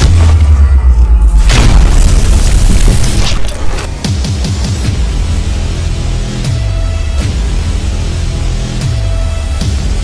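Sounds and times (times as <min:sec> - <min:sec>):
deep cinematic boom: 0:00.0 - 0:03.4
trailer music: 0:00.0 - 0:10.0.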